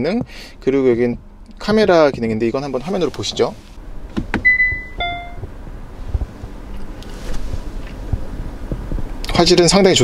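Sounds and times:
car electronic beeps: 4.4s - 5.5s.

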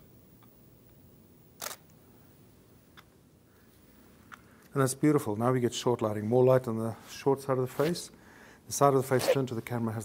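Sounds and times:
camera shutter snap: 1.6s - 1.9s.

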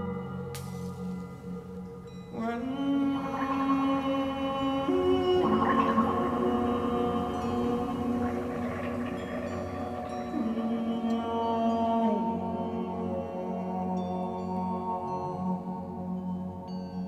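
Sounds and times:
sustained tones on water instruments: 0.0s - 17.0s.

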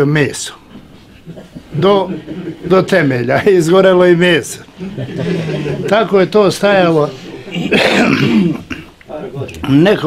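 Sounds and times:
man coughing: 7.5s - 9.0s.

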